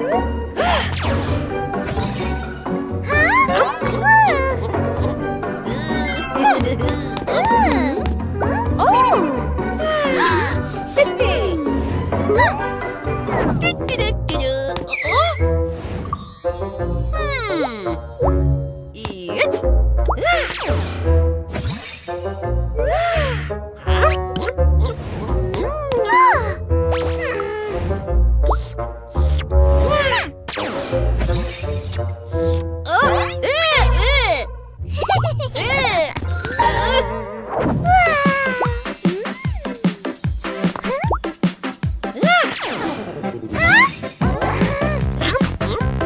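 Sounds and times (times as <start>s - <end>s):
upbeat cartoon background music: 0.0s - 46.0s.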